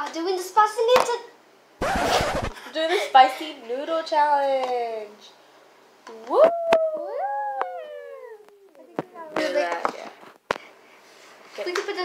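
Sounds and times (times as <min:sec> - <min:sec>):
girls whooping: 0:06.3 - 0:08.7.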